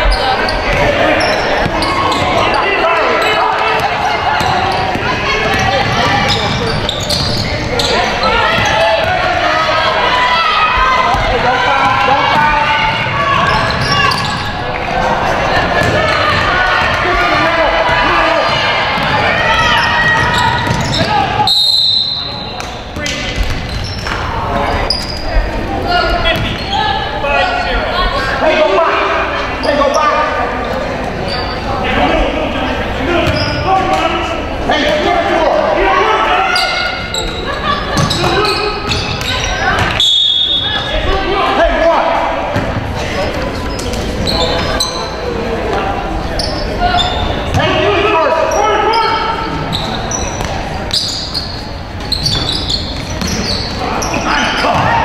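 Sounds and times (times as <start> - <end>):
voices in a gym: 0.0 - 55.0
basketball bouncing on court: 3.7 - 7.6, 11.0 - 14.4, 18.9 - 21.2.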